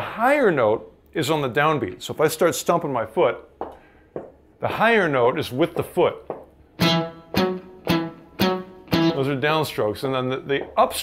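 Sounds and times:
electric guitar blues shuffle: 6.4 - 10.9.

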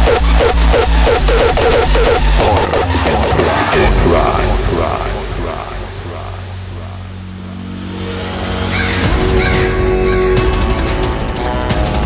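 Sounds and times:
sustained synth tones: 0.0 - 8.7.

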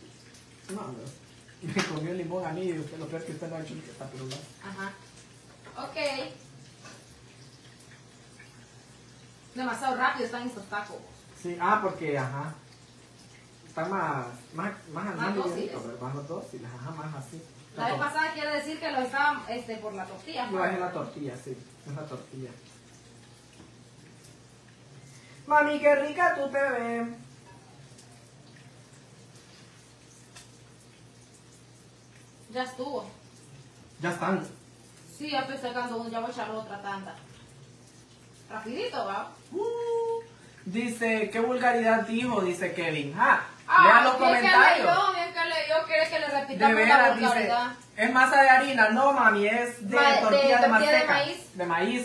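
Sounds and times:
food sizzling in oil: 0.0 - 52.0
low steady hum: 0.0 - 52.0.

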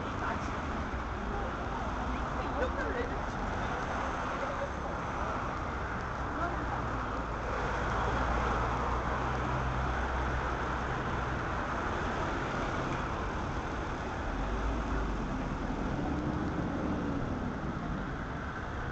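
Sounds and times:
bus engine pulling past: 0.0 - 18.9
city street traffic: 0.0 - 18.9.

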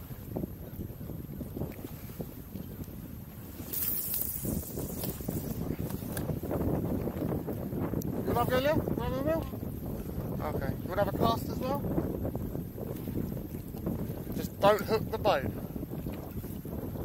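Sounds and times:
water lapping against boat hull: 0.0 - 17.0
wind buffeting microphone: 0.0 - 17.0
fishing rod cast hiss: 3.6 - 6.3.

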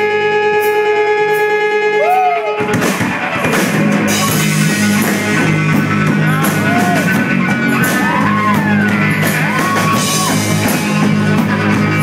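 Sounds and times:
electric guitar chords: 0.0 - 12.0
live rock band playing: 0.0 - 12.0.

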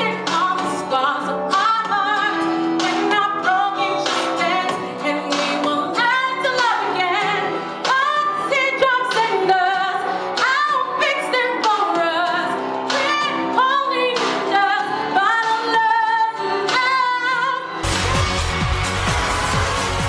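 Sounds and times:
woman singing into microphone: 0.0 - 17.8
musical accompaniment: 0.0 - 20.0.

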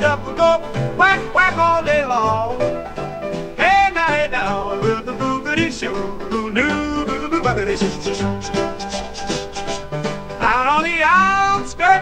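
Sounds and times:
country swing song with guitar: 0.0 - 12.0.

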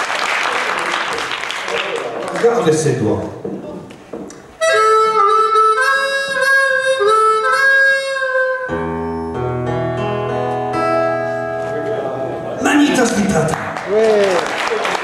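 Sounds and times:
harmonica melody: 4.5 - 13.0.

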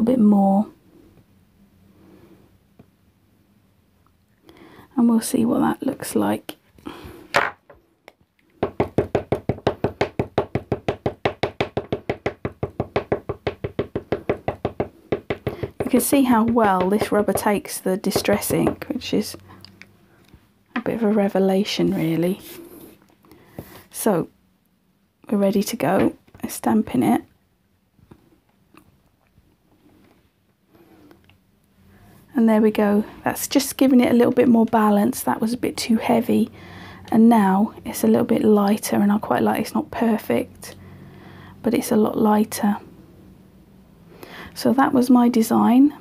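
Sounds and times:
ink pad tapping on stamp: 8.6 - 17.5.

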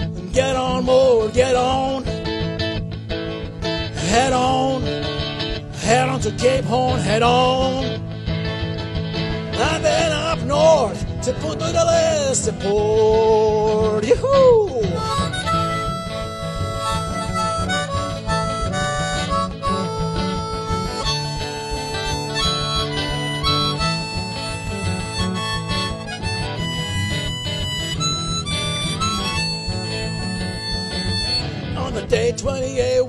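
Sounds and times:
person singing: 0.0 - 2.1, 3.9 - 5.0, 5.7 - 8.0, 9.6 - 15.8, 31.7 - 33.0
backing band beat: 9.2 - 32.4
harmonica solo: 9.4 - 12.8, 14.3 - 32.1.

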